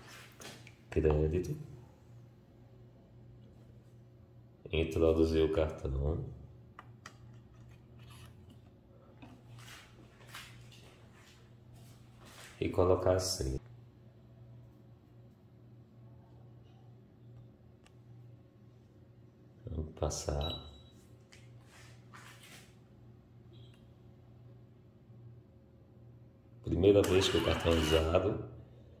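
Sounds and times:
low steady hum: 0:00.0 - 0:29.0
card terminal handling scrapes and clicks: 0:07.1 - 0:08.7, 0:27.0 - 0:28.2.

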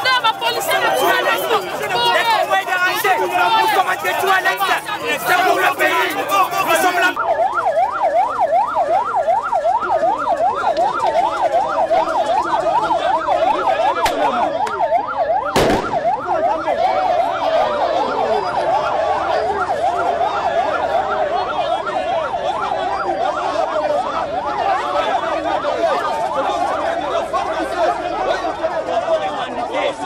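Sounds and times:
slower wailing siren tone: 0:00.0 - 0:28.6
electronic siren yelping: 0:00.0 - 0:29.7.

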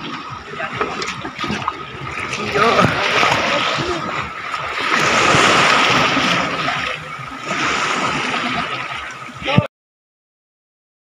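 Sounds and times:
waves washing onto beach: 0:00.0 - 0:09.7.

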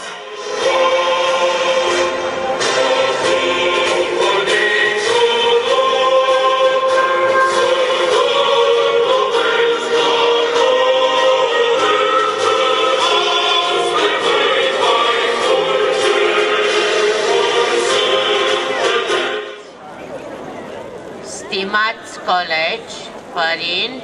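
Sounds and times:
choir singing: 0:00.0 - 0:19.7.

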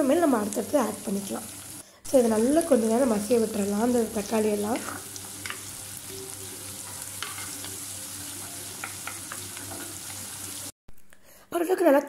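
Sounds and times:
vegetables sizzling in oil: 0:00.0 - 0:10.8
wooden spatula stirring: 0:04.6 - 0:10.6.

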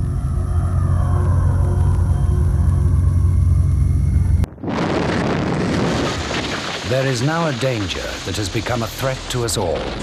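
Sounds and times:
eerie held tone: 0:00.0 - 0:04.6
deep rumble: 0:00.0 - 0:10.0.

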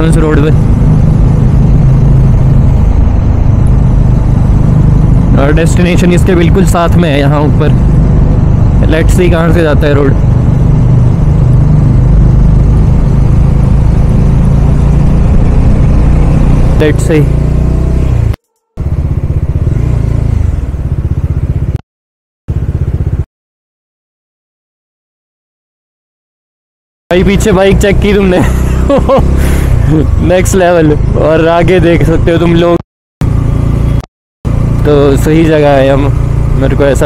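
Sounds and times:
motorcycle engine riding slowly: 0:00.0 - 0:21.8, 0:22.5 - 0:23.2, 0:27.2 - 0:32.4, 0:33.2 - 0:37.0.

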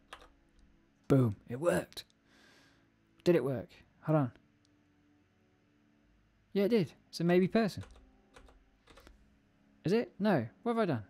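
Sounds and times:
keyboard keystrokes: 0:00.0 - 0:00.3, 0:07.8 - 0:09.1.

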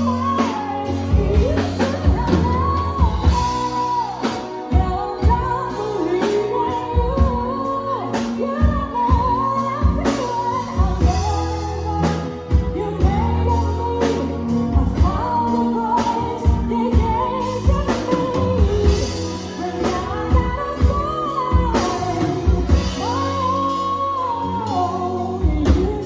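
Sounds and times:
live band playing pop ballad: 0:00.0 - 0:26.0
person singing: 0:00.0 - 0:26.0.

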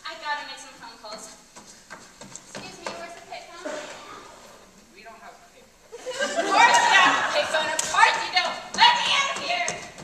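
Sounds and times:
footsteps on stage floor: 0:00.8 - 0:04.9, 0:07.6 - 0:10.0.

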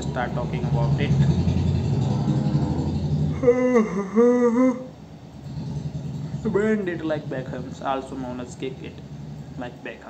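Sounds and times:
engine running: 0:00.0 - 0:10.0.

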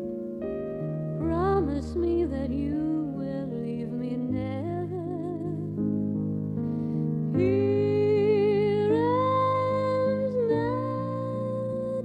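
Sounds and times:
sustained keyboard chords: 0:00.0 - 0:12.0
woman singing: 0:01.2 - 0:05.8, 0:07.3 - 0:12.0.

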